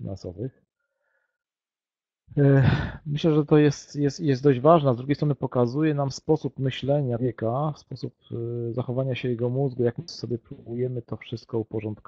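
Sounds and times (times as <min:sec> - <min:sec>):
man sighing: 0:02.6 - 0:03.1.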